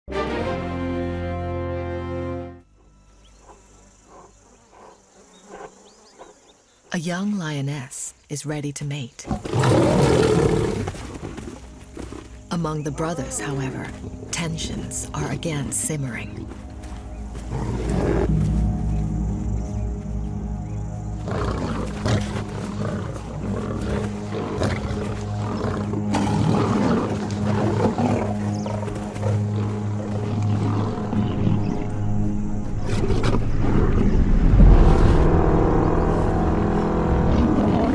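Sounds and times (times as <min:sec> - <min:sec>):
background music with low drone: 0:00.1 - 0:37.9
insects buzzing: 0:01.0 - 0:37.9
lions growling and snarling: 0:03.3 - 0:06.9, 0:09.2 - 0:12.4, 0:17.4 - 0:18.5, 0:21.2 - 0:32.0, 0:32.7 - 0:34.4, 0:37.3 - 0:37.9.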